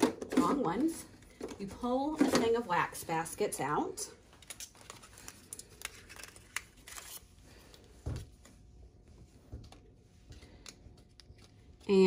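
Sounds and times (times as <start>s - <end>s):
packaging rustle: 4.4s - 7.4s.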